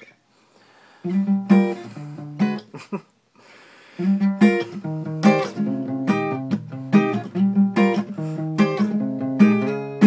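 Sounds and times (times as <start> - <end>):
faint room hiss: 0.0 - 10.0
acoustic guitar strummed: 1.0 - 2.8, 4.0 - 10.0.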